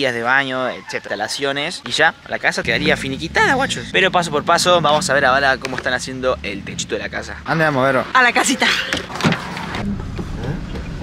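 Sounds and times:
car engine and road noise: 1.9 - 11.0.

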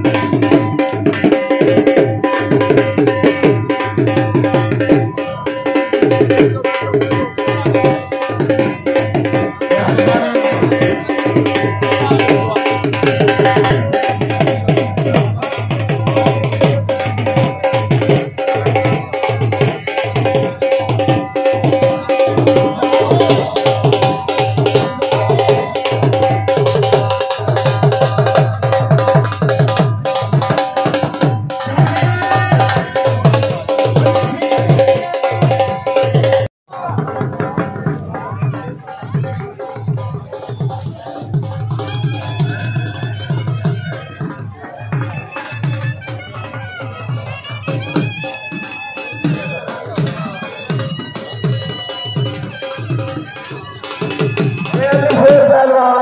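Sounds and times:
dhol drum playing: 0.0 - 56.0.

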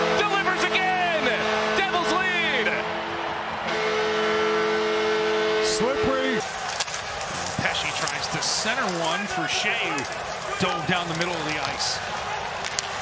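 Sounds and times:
arena goal horn: 0.0 - 6.6
crowd cheering: 0.0 - 13.0.

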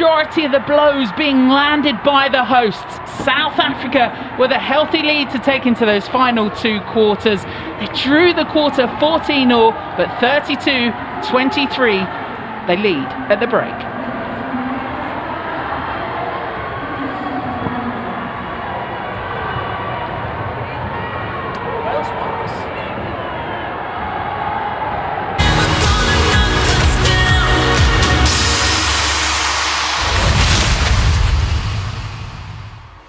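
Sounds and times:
crowd murmur: 1.9 - 30.0
broadcast sting music: 25.4 - 33.0.

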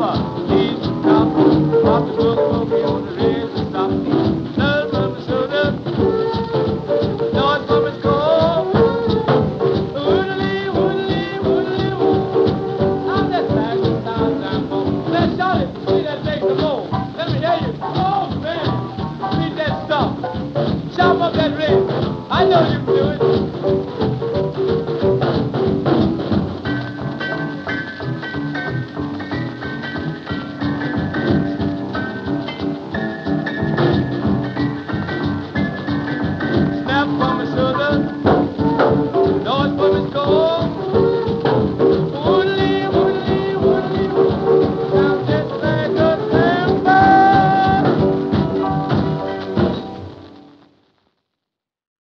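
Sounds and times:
blues band playing: 0.0 - 51.0.

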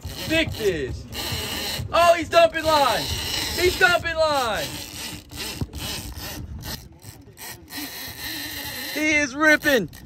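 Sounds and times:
fishing reel rasping: 0.0 - 1.9, 2.7 - 10.0.

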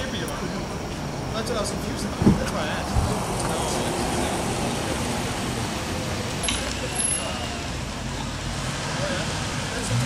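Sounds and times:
car engine and tyres: 0.0 - 10.0
traffic noise: 0.0 - 10.0.

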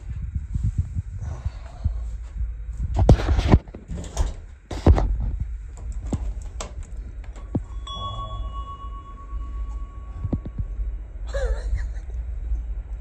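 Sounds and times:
low steady hum: 0.0 - 13.0
chime-like ringing tone: 7.5 - 11.2.

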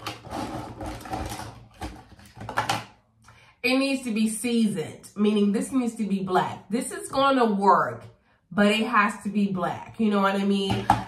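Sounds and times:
objects clattering and rustling: 0.0 - 2.9.

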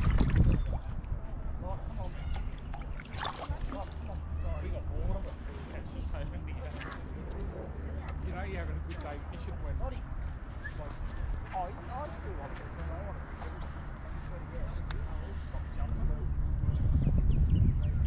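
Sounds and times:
steady low rumble: 0.0 - 18.0.

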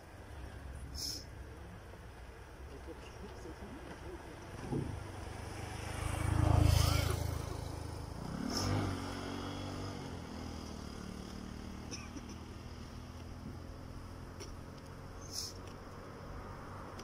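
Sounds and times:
steady engine hum: 0.0 - 17.0
vehicles passing on road: 0.0 - 17.0.

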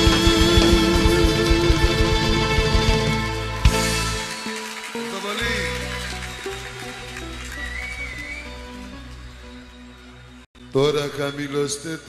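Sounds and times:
live band instrumental: 0.0 - 10.0.

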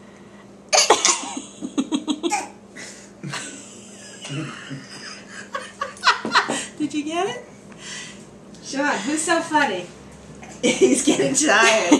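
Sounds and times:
person coughing: 0.7 - 1.4, 2.3 - 2.6
person laughing: 1.3 - 6.7.

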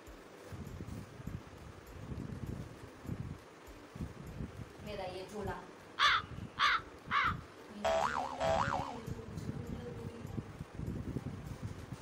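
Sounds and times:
crow cawing: 6.0 - 7.4
cartoon boing sound effect: 7.8 - 9.1.

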